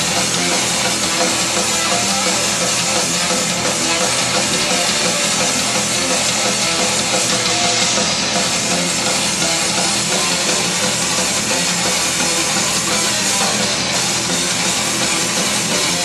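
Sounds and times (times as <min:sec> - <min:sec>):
distorted electric guitars: 0:00.0 - 0:16.0
drum kit: 0:00.0 - 0:16.0.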